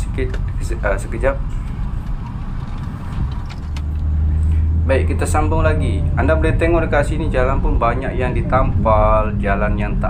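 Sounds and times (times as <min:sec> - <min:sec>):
engine and road rumble: 0:00.0 - 0:10.0
low hum: 0:00.0 - 0:10.0.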